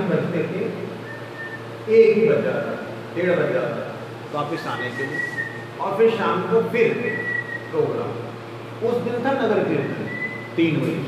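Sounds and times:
whistle-like tone: 0:01.0 - 0:01.6, 0:04.8 - 0:05.6, 0:07.1 - 0:07.8, 0:09.8 - 0:10.5
man talking: 0:01.9 - 0:11.0.

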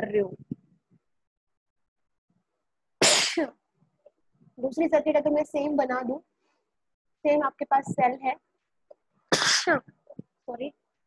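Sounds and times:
person sneezing: 0:03.0 - 0:03.6, 0:09.3 - 0:09.8.

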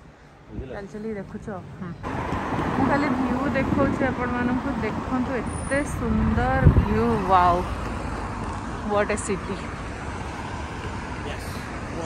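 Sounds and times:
road traffic hum: 0:00.0 - 0:12.0.

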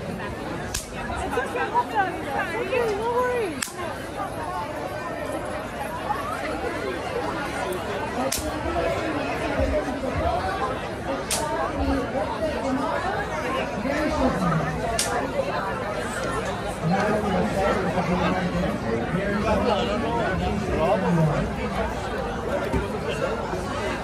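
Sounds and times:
chatter of overlapping voices: 0:00.0 - 0:24.0.

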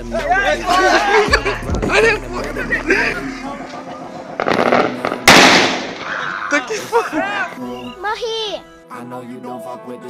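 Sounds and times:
firecracker bang: 0:04.3 - 0:06.2.

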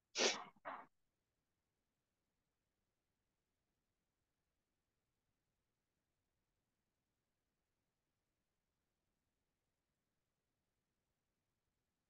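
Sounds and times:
sharp bursts of breath: 0:00.1 - 0:00.5.

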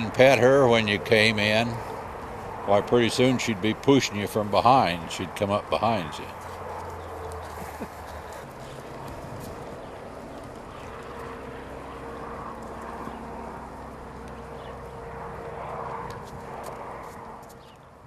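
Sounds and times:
engine-like drone: 0:00.0 - 0:18.0
outdoor background noise: 0:00.0 - 0:18.0.

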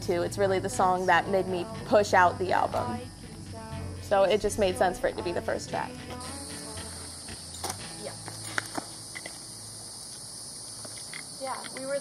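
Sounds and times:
insects chirping: 0:00.0 - 0:12.0.

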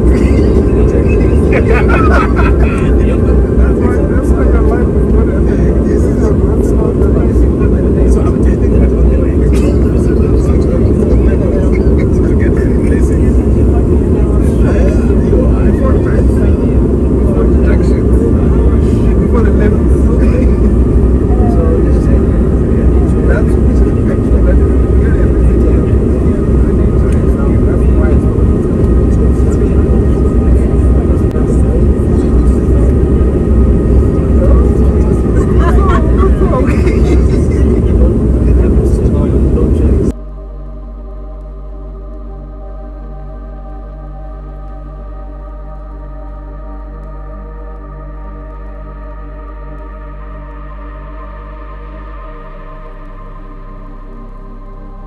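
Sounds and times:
airliner cabin engine rumble: 0:00.0 - 0:55.0
indistinct passenger voices: 0:00.0 - 0:55.0.

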